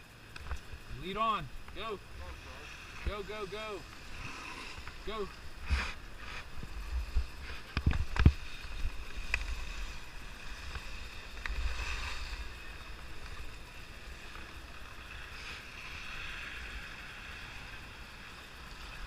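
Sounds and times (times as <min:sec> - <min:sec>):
skis scraping over snow: 0:01.8 - 0:19.0.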